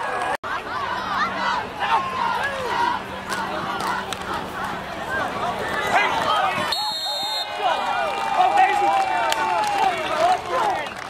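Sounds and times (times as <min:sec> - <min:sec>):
crowd shouting and cheering: 0:00.0 - 0:11.0
long drawn-out yell: 0:00.5 - 0:04.1.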